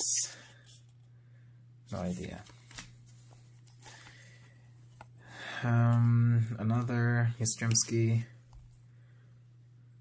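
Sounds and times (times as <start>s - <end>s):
low steady hum: 0.0s - 10.0s
cardboard cards rustling and clicking: 2.0s - 5.2s.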